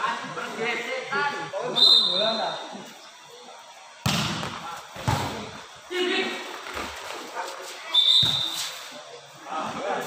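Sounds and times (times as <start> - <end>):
shrill whistle tone: 1.7 - 2.6, 7.9 - 8.7
volleyball thud: 4.0 - 5.5.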